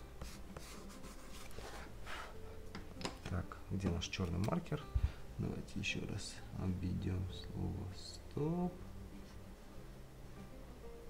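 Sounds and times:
crayon scratching on paper: 0.0 - 1.9.

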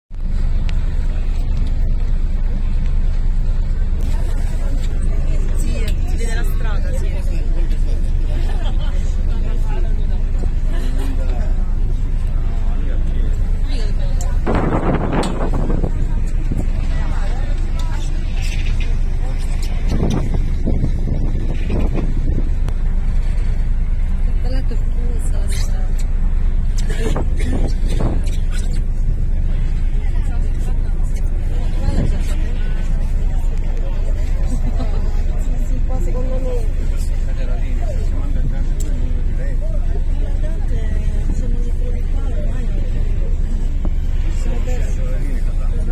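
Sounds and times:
boat engine droning: 0.1 - 45.9
people talking: 0.9 - 23.6, 24.2 - 45.9.

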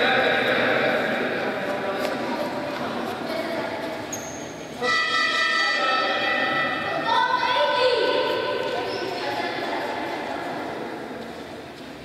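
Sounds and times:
brief high whistle-like tone: 4.2 - 5.8
loud horn notes: 4.8 - 6.3.

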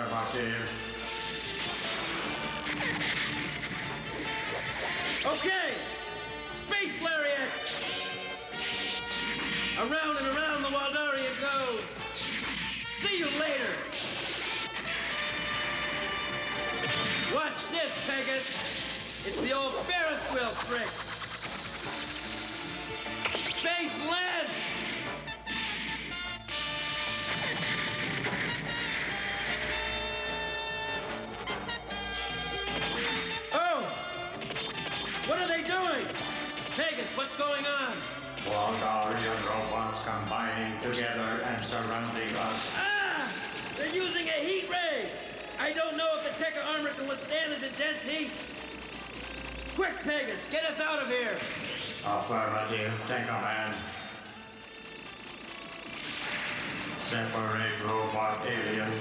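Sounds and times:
cartoon action music: 0.0 - 59.0
electronic sweeping tones: 0.7 - 6.7, 7.4 - 59.0.

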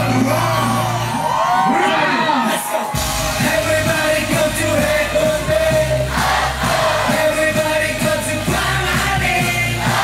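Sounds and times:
crowd whooping: 0.0 - 3.5.

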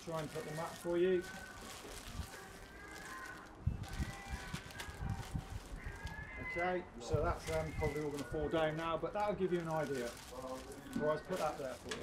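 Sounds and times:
plastic packaging rustling: 0.0 - 12.0.

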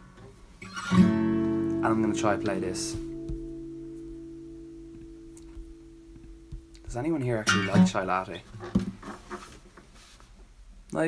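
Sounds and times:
acoustic guitar chord ringing: 0.6 - 8.3.

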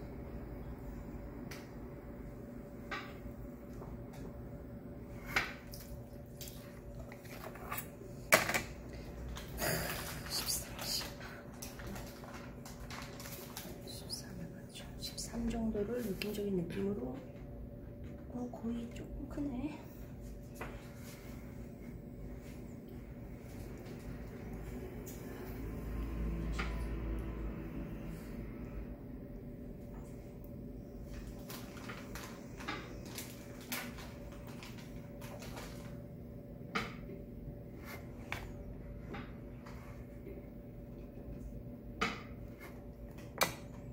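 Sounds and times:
pottery wheel motor humming: 13.8 - 31.4.

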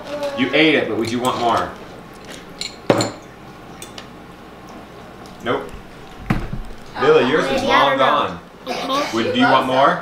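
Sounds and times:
tableware clinking: 1.0 - 4.0.

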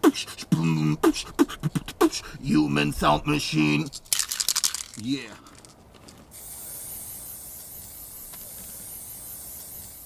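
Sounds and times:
spray paint can hissing: 4.1 - 5.0, 6.3 - 10.0.

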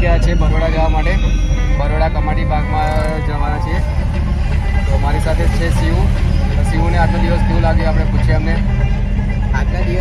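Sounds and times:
vehicle low rumble: 0.0 - 10.0
voices talking: 0.0 - 10.0.

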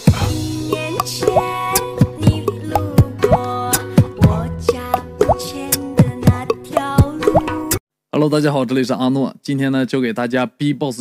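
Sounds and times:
held vocal bass tones: 0.1 - 7.2
beatboxing vocal kick drums: 1.0 - 7.7
beatboxing sharp clicks: 1.0 - 7.8.

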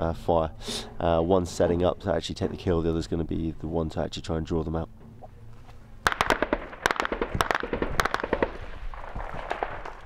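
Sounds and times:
echoing rumble: 4.9 - 10.0
gunshots: 6.0 - 10.0.

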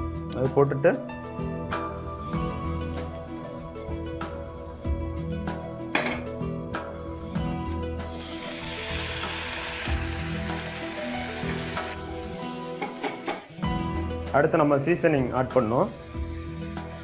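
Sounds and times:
food sizzling in a wok: 8.0 - 13.6.

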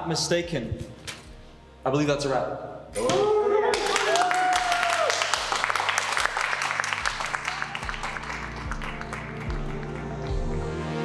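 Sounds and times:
background music with low beat: 0.0 - 3.3, 6.3 - 11.0
small group applauding: 3.7 - 11.0.

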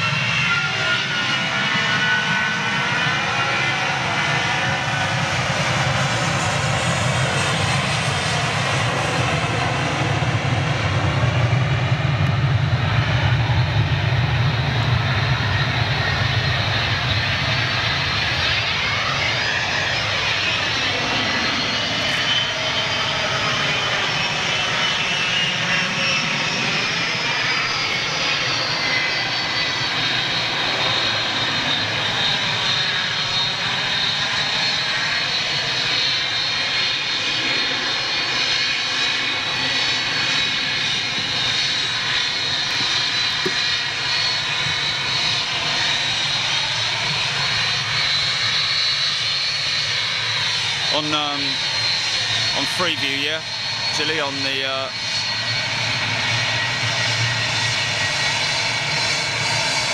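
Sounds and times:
jet engines with high whine: 0.0 - 59.9.

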